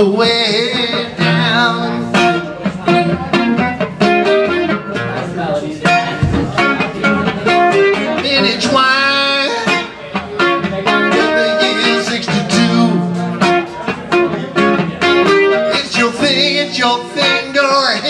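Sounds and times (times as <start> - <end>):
acoustic guitar playing blues: 0.0 - 18.0.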